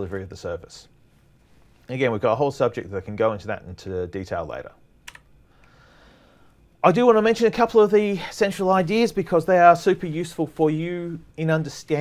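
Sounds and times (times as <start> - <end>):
faint hiss: 0.0 - 12.0
person speaking: 1.8 - 5.2, 6.8 - 12.0.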